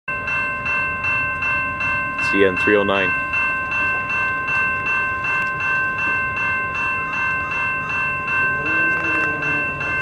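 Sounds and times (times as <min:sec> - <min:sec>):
railroad crossing bell ringing: 0:00.1 - 0:10.0.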